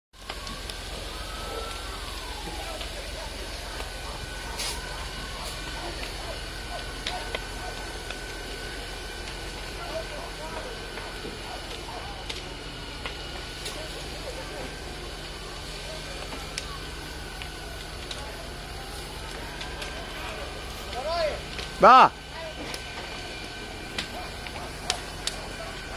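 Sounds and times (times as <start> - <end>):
burning roof crackling and popping: 0.1 - 25.9
fire engine running hum: 0.1 - 25.9
man shouting: 21.1 - 22.2.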